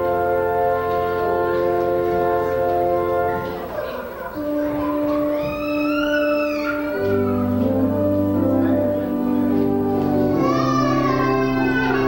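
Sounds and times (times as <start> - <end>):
church organ chord: 0.0 - 5.3, 6.7 - 12.0
child's long high cry: 4.7 - 7.5, 10.3 - 12.0.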